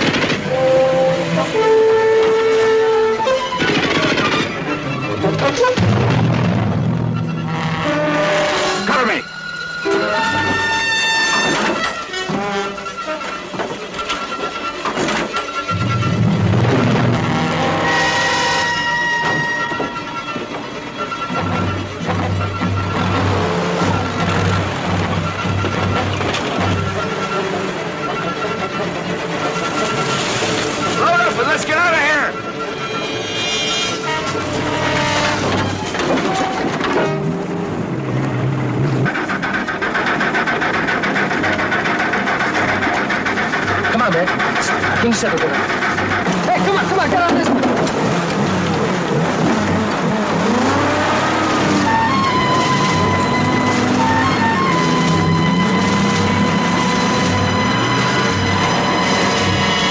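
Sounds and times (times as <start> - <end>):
film soundtrack music: 0.0 - 59.9
vehicle engine running: 36.8 - 59.9.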